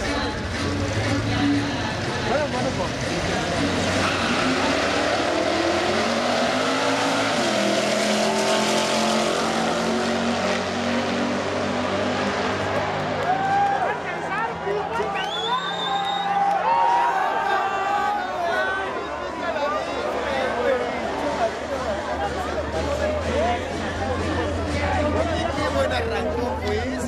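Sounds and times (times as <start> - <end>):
drag car accelerating hard: 0.0 - 15.9
spectators' voices: 0.0 - 27.0.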